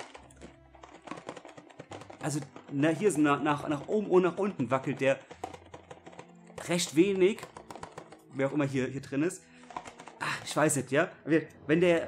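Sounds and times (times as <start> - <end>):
figure rattling in cardboard box: 0.0 - 8.4.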